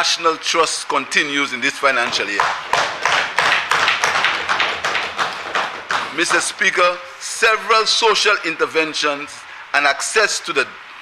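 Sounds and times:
rhythmic applause: 1.8s - 8.3s.

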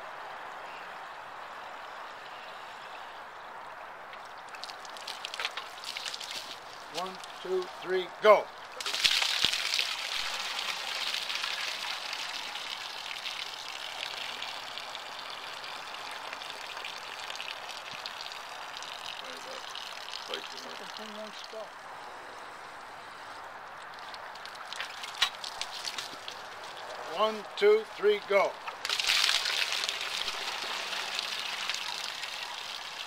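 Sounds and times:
water gushing onto grass: 0.0s - 33.0s.

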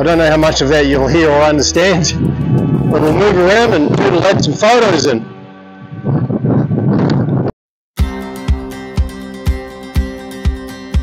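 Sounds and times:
strong wind buffeting microphone: 0.0s - 7.6s.

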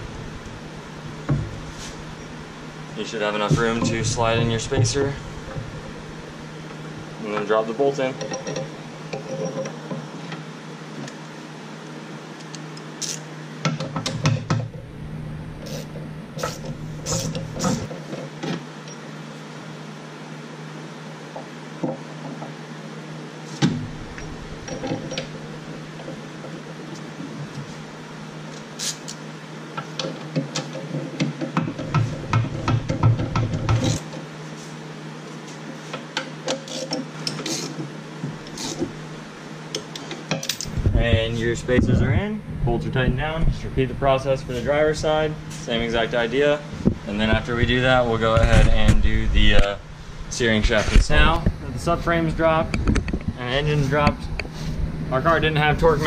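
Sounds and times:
background hum: 0.0s - 56.0s
metal tools clinking: 8.2s - 9.8s, 40.4s - 40.8s
ratchet clicking: 13.0s - 13.2s.

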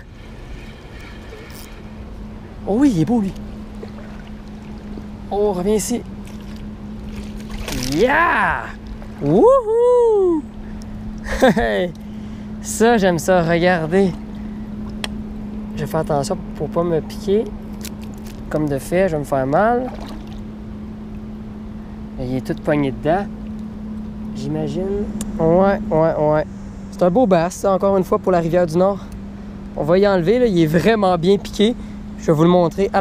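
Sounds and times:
low hum: 0.0s - 33.0s
net splashing in water: 6.2s - 8.1s, 19.8s - 20.4s.

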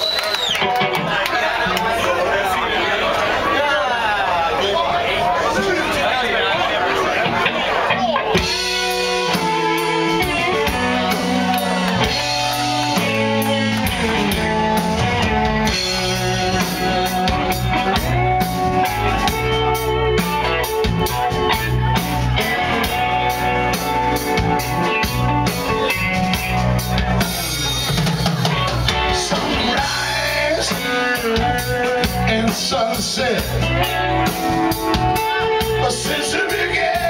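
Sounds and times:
electric guitars: 0.0s - 2.3s, 6.6s - 37.0s
drum kit steady beat: 8.1s - 37.0s.

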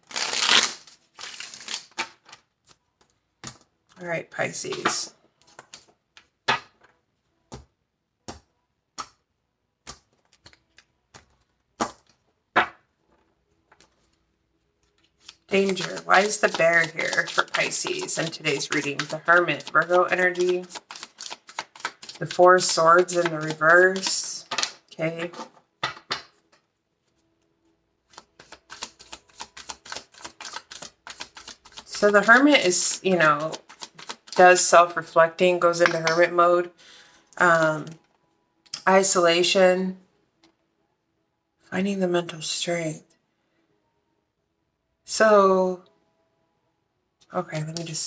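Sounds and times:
cards shuffling: 0.0s - 3.7s, 4.6s - 6.7s, 9.9s - 12.2s, 14.8s - 26.5s, 28.0s - 35.1s, 35.8s - 36.3s, 47.5s - 48.0s.

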